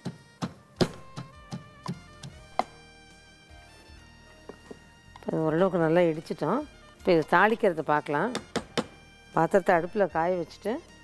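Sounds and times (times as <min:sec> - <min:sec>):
wooden pestle pounding in mortar: 0:00.0 - 0:02.8, 0:08.3 - 0:09.0.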